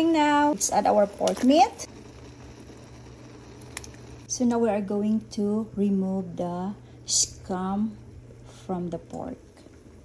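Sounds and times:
water boiling in pot: 0.0 - 10.0.

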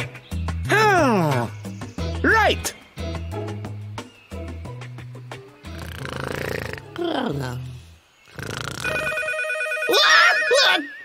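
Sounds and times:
telephone ringing: 8.8 - 11.0
person crying out: 9.9 - 10.9.

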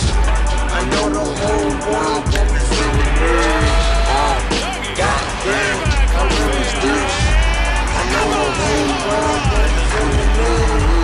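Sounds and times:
hip-hop beat with heavy bass: 0.0 - 11.0.

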